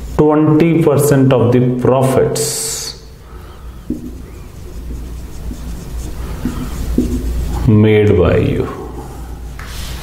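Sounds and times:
low background hum: 0.0s - 10.0s
marker writing on whiteboard: 3.5s - 7.6s.

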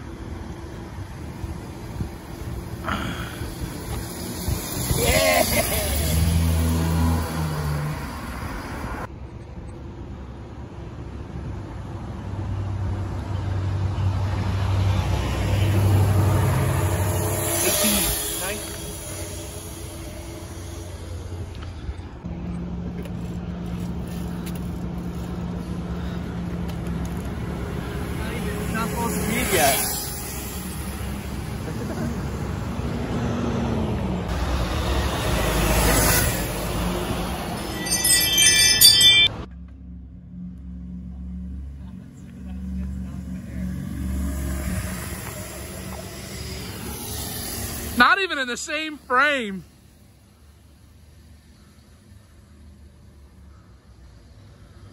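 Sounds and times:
electric dirt bikes humming past: 0.2s - 9.1s, 14.7s - 21.9s, 23.0s - 39.0s, 40.3s - 54.9s
electric dirt bike motor whine: 16.0s - 21.7s, 43.4s - 48.0s.

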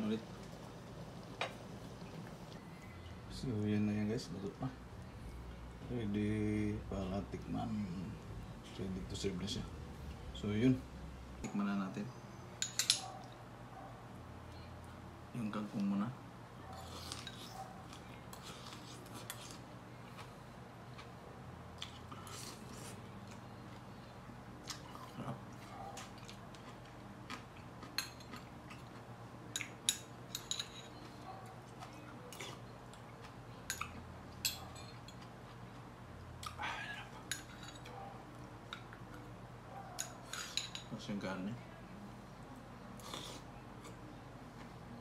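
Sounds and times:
metal spoon clinking in bowl: 12.6s - 13.1s, 29.6s - 31.0s.

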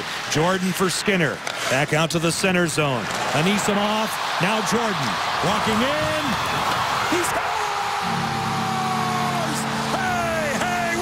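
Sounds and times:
crowd cheering: 3.0s - 11.0s.

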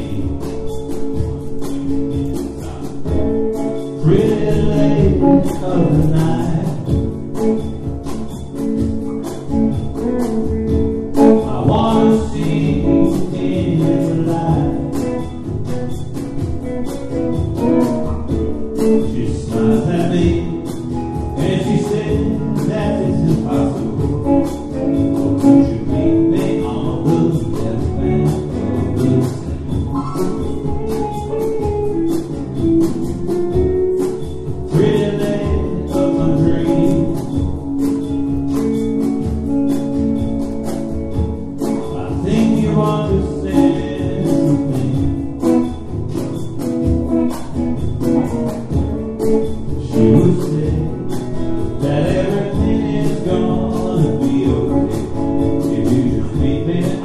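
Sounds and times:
drums and percussion: 0.0s - 57.0s
electric guitar: 0.0s - 57.0s.

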